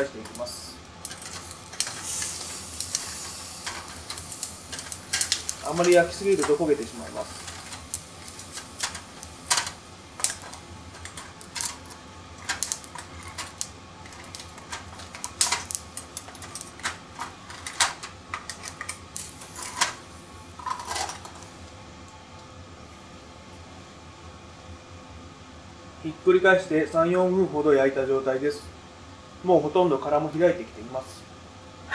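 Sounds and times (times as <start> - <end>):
sizzling hiss: 0.0 - 21.7
oysters crackling and popping: 0.3 - 19.9.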